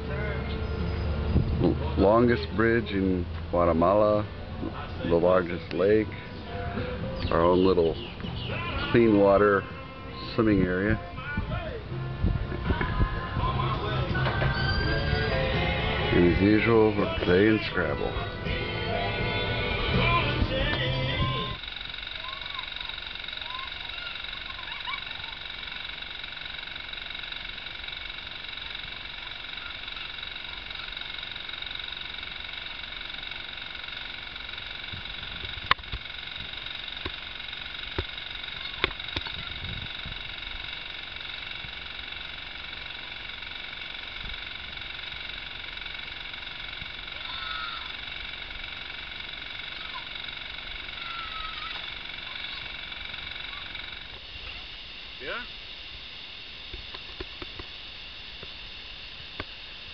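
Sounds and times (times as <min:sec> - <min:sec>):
insect chorus: 0:07.1 - 0:10.9, 0:13.1 - 0:18.4, 0:19.0 - 0:59.9
sharp clicks: 0:20.0 - 0:59.9.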